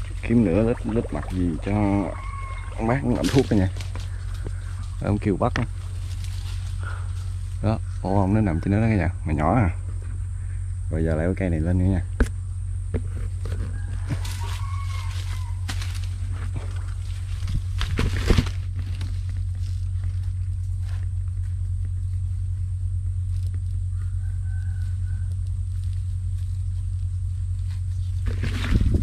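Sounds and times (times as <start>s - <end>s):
dry leaves crackling: 0.0s - 8.2s, 13.8s - 29.0s
steady low hum: 0.0s - 29.0s
rooster crowing faintly: 0.2s - 4.8s, 13.4s - 16.0s, 23.8s - 25.6s.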